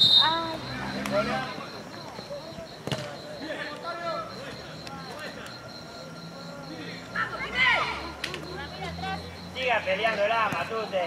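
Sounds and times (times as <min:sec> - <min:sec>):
distant voices shouting: 0:00.0 - 0:11.0
football kick thud: 0:02.8 - 0:03.1.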